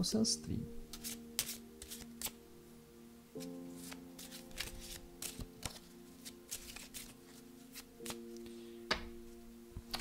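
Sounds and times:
faint background music: 0:00.0 - 0:10.0
cards being shuffled: 0:00.9 - 0:02.4, 0:03.4 - 0:08.5.

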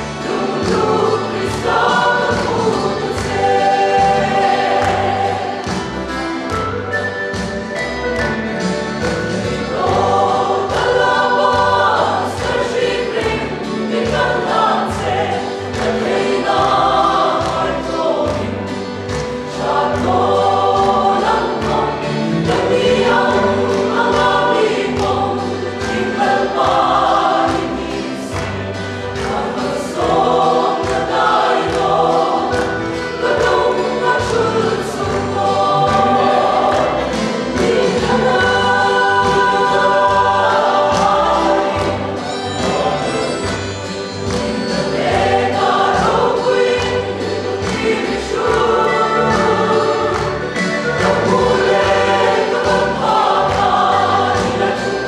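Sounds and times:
mixed choir singing gospel: 0:00.0 - 0:55.0.

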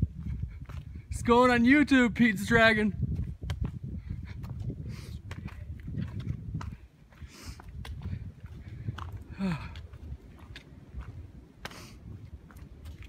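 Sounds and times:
footsteps on muddy leafy trail: 0:00.0 - 0:01.8, 0:02.4 - 0:13.0
low rumble on microphone: 0:02.9 - 0:13.0.

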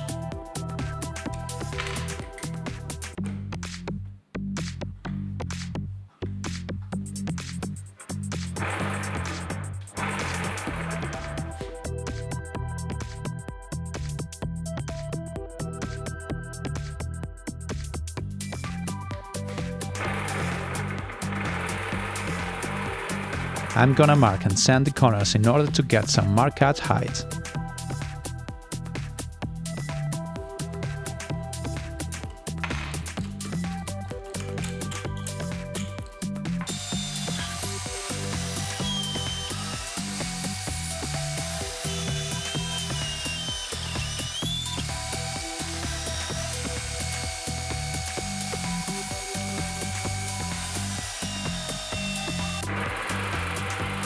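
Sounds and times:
electronic music with bass beat: 0:00.0 - 0:54.0
belt sander sanding wood: 0:08.6 - 0:11.6, 0:19.5 - 0:24.7, 0:36.6 - 0:54.0
jigsaw running freely: 0:08.6 - 0:11.6, 0:19.8 - 0:24.5, 0:36.6 - 0:54.0.

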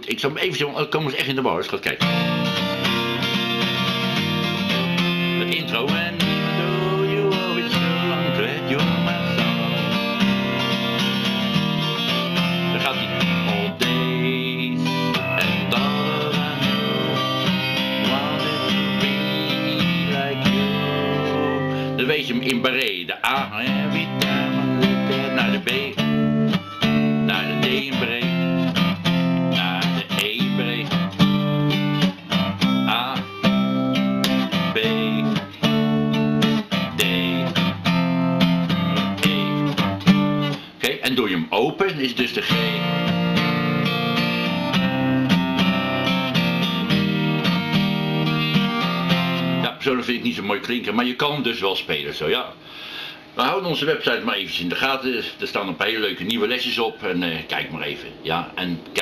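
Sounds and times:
acoustic guitar strumming chords: 0:01.9 - 0:51.2.

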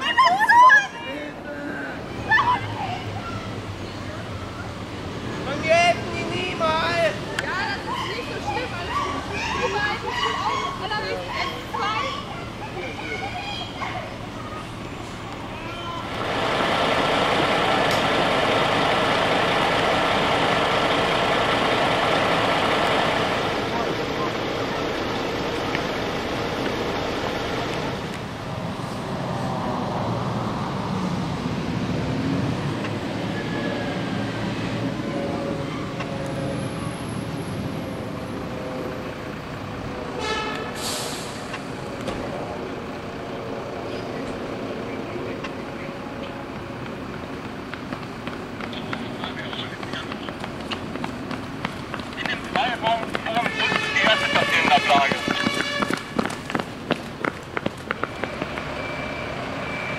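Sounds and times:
fire truck diesel engines: 0:00.0 - 0:59.9
air brake hiss: 0:40.3 - 0:41.6.

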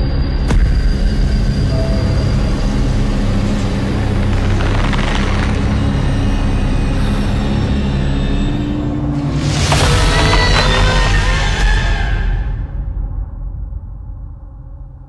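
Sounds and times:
low rumbling drone: 0:00.0 - 0:15.0.

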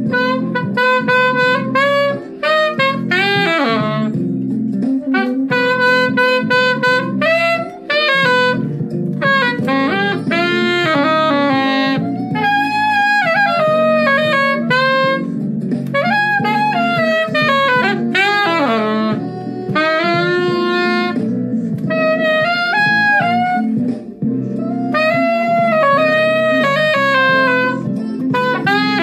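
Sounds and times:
backing track: 0:00.0 - 0:29.0
soprano saxophone jazz melody: 0:00.0 - 0:29.0.

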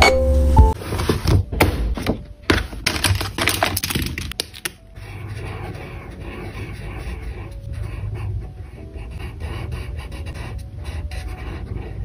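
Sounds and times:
pens clattering in plastic case: 0:02.5 - 0:04.7
marker rubbing on paper: 0:05.0 - 0:12.0.

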